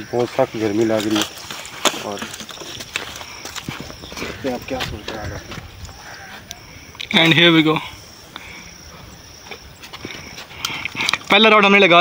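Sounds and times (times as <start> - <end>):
man speaking: 4.2 - 5.6, 7.0 - 8.0.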